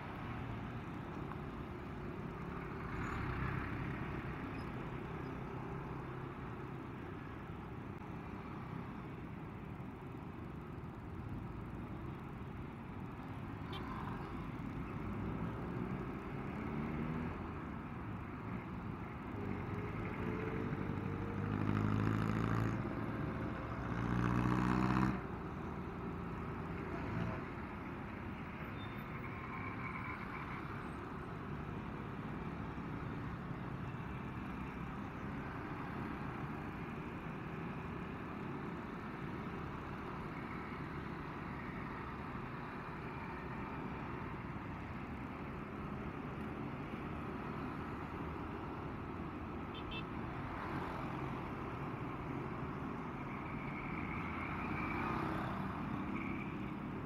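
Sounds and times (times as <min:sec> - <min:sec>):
wind and road noise: 0:00.0 - 0:57.0.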